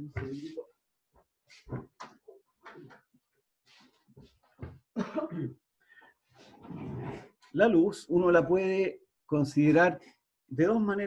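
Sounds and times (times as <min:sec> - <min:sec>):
person coughing: 0:05.0 - 0:05.6.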